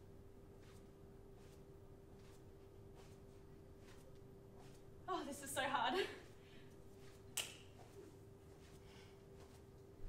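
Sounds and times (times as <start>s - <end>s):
faint steady hum: 0.0s - 10.0s
foot scuffing on yoga mat: 0.5s - 5.4s, 6.3s - 10.0s.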